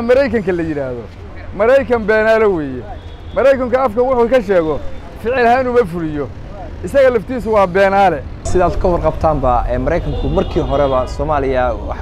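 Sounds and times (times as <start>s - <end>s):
man talking: 0.0s - 12.0s
street traffic rumble: 0.0s - 12.0s.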